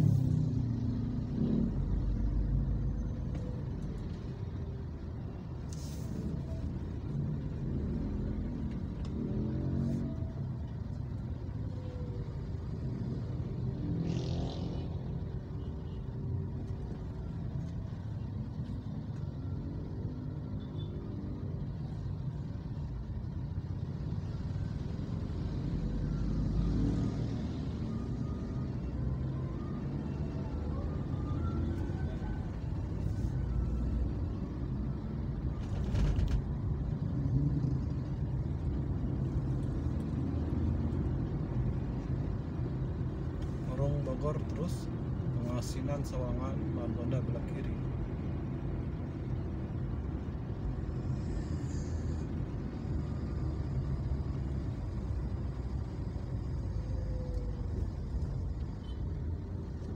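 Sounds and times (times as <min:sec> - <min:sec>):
city traffic rumble: 0:00.0 - 0:59.9.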